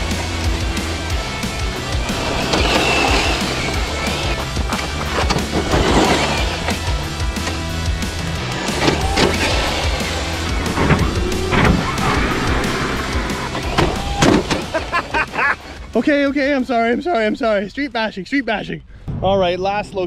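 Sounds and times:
background music with bass line: 0.0s - 17.0s
rc truck motor and spinning tyres: 0.1s - 14.8s.

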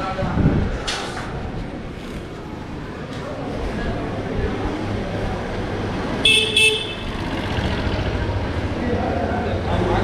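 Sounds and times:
street and crowd noise: 0.0s - 10.0s
vehicle horn beeps: 6.2s - 7.1s.

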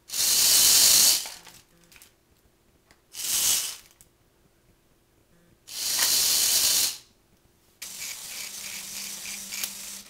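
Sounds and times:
electric motor whirring: 7.8s - 10.0s
motor humming with pulsing: 7.8s - 10.0s.

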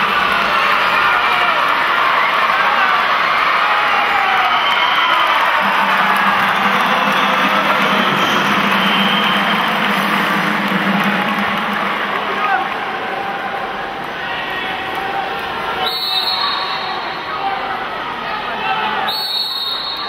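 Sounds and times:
crowd cheering and chanting: 0.0s - 19.1s.

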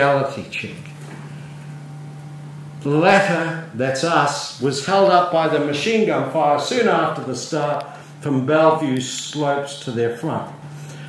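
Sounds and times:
man speaking: 0.0s - 1.0s, 2.8s - 10.6s.

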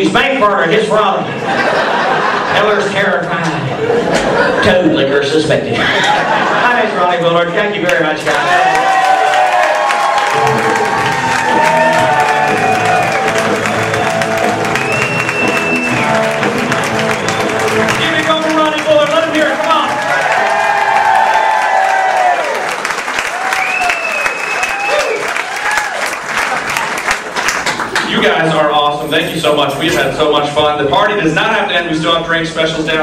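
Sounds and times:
audience applauding: 7.9s - 28.5s.

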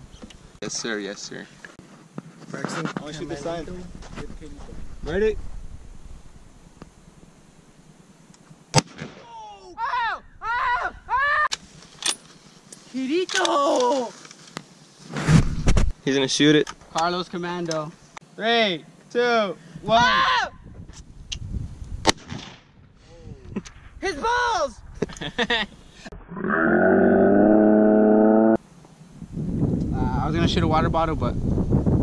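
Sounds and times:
rifle shot: 8.7s - 9.3s, 22.0s - 22.8s
rifle shot with echo: 8.7s - 9.3s
people whooping: 9.2s - 11.5s
person exclaiming: 9.2s - 11.5s, 13.3s - 14.2s, 19.8s - 20.6s.

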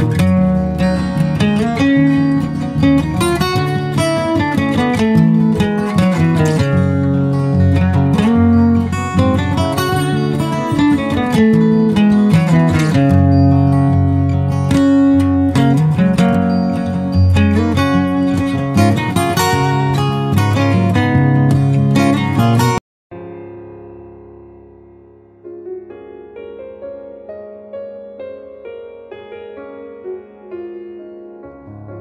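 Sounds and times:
acoustic guitar music: 0.0s - 32.0s.

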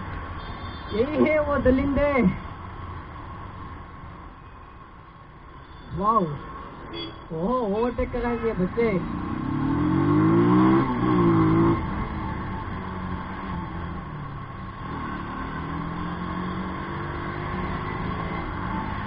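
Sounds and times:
motorcycle engine revving: 8.9s - 19.0s.

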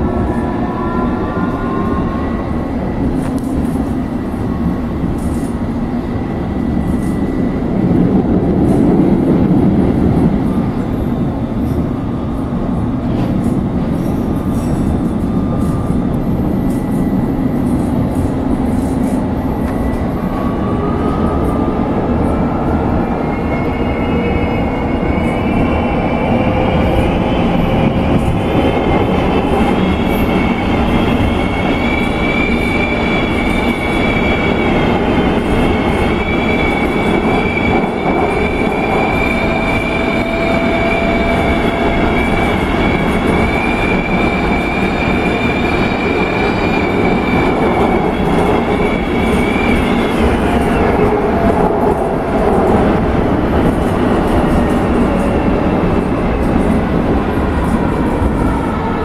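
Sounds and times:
train wheels rumbling on track: 0.0s - 59.0s.

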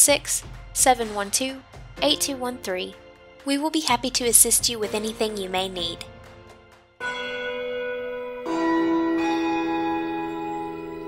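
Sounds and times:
background music: 0.0s - 11.0s
bell chimes ringing: 7.0s - 11.0s.

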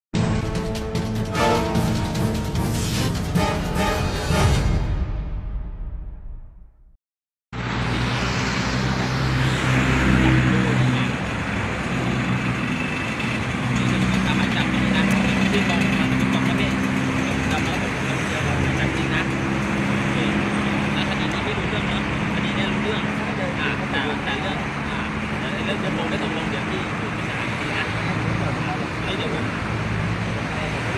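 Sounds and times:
street traffic: 0.2s - 4.5s, 7.6s - 30.9s
engine running nearby: 7.6s - 30.9s
men talking: 10.0s - 11.4s, 13.6s - 30.9s.

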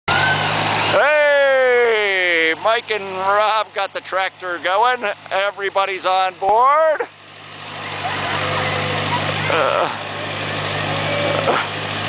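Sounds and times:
tractor engine idling: 0.1s - 12.0s.

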